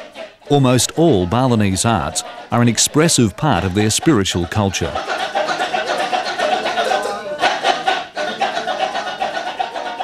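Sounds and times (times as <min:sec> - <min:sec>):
men chanting rhythmic syllables: 0:00.0 - 0:10.0.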